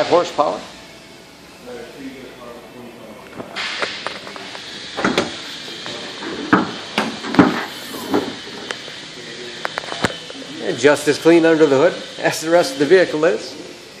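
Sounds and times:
steady hiss: 0:00.0 - 0:14.0.

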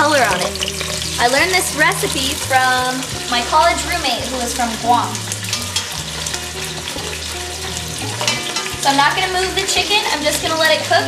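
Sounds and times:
chicken sizzling in a pot: 0:00.0 - 0:11.0.

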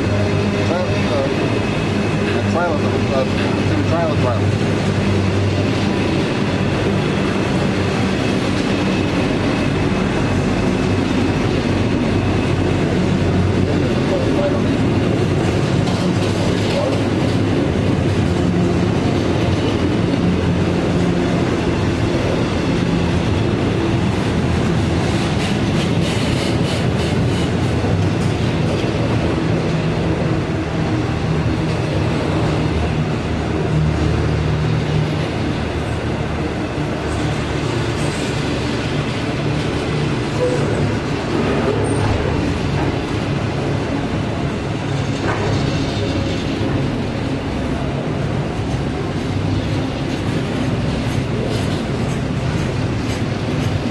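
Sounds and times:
train wheels rumbling on rails: 0:00.0 - 0:53.9.

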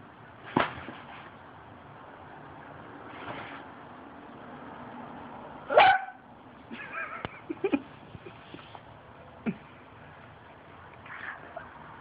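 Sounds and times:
dog barking: 0:05.7 - 0:06.2.

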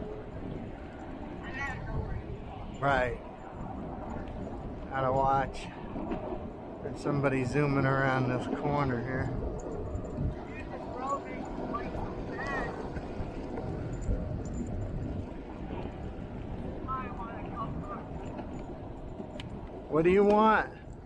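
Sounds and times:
tyres rolling on asphalt: 0:00.0 - 0:21.0
wind noise: 0:00.0 - 0:21.0
faint voices: 0:10.3 - 0:13.4.

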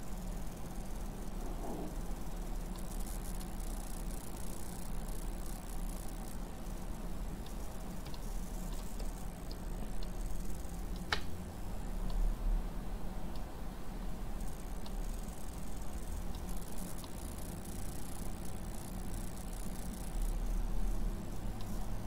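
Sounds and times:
low electrical hum: 0:00.0 - 0:22.0
computer mouse clicks: 0:07.4 - 0:10.2, 0:10.9 - 0:11.3.

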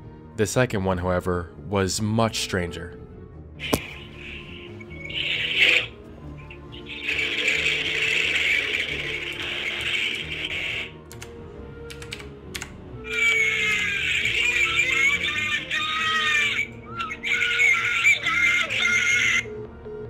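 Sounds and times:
low dark background music: 0:00.0 - 0:20.0
shrill wavering scream: 0:03.6 - 0:10.9, 0:13.1 - 0:19.5
hissing phone line noise: 0:03.6 - 0:11.0.

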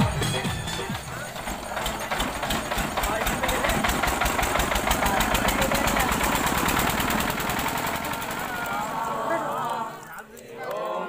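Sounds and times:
small diesel engine knocking: 0:00.0 - 0:09.5.

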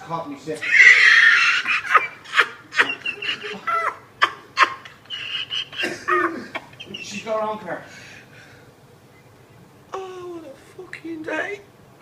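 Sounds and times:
people laughing hard: 0:00.6 - 0:07.3
shriek of laughter: 0:00.6 - 0:07.4.

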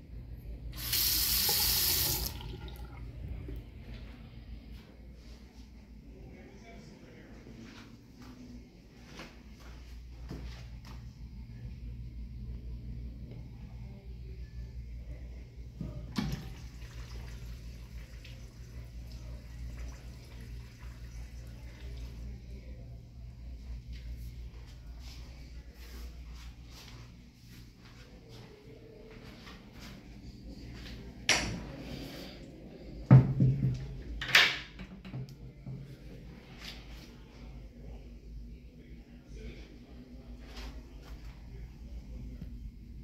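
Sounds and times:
faucet water running into sink: 0:00.8 - 0:03.2, 0:16.2 - 0:22.1
steady low hum: 0:01.4 - 0:34.2, 0:35.2 - 0:43.0.

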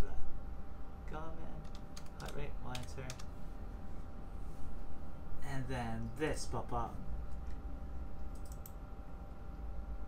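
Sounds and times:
keyboard typing: 0:01.6 - 0:03.3, 0:08.3 - 0:08.8.

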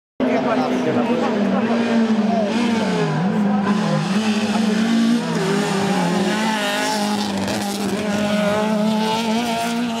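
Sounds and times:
rally car engine revving: 0:00.2 - 0:10.0.

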